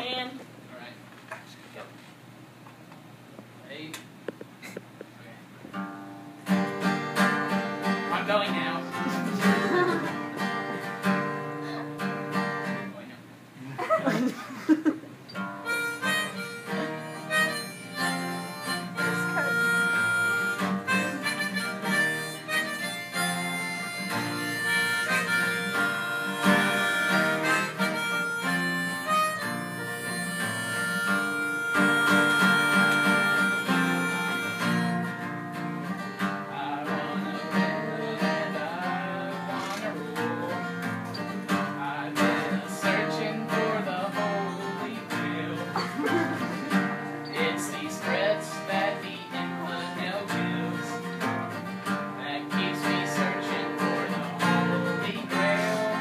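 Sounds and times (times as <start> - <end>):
harmonica long held notes: 9.0 - 12.0, 15.6 - 35.5, 53.6 - 56.0
guitar chord strummed: 15.6 - 56.0.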